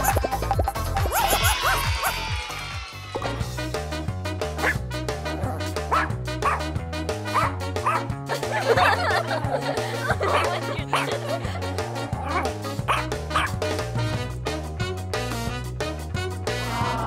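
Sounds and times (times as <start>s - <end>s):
background music with beat: 0.0s - 2.6s
dog barking and yipping: 1.0s - 2.5s, 4.6s - 4.8s, 5.9s - 6.7s, 7.3s - 8.1s, 10.2s - 11.2s, 12.2s - 13.6s.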